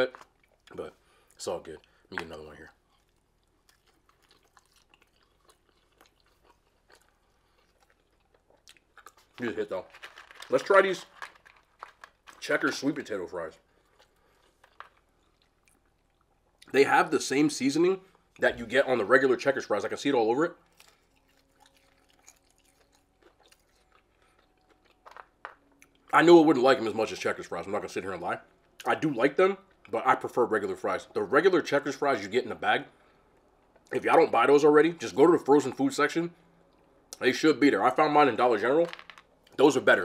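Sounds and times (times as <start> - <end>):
faint chewing mouth clicks: 2.8 - 9.4, 20.7 - 25.0.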